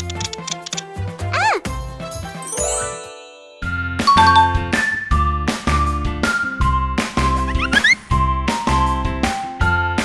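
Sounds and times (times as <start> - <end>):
cheerful background music: 0.0 - 10.0
twinkling chime: 2.4 - 4.7.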